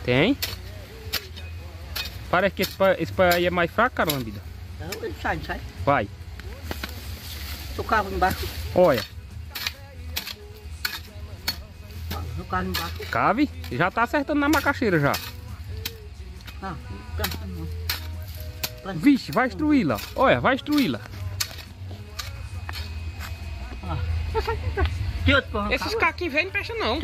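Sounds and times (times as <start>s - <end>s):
hoe chopping into stony soil: 8.3s - 13.8s, 17.2s - 23.4s.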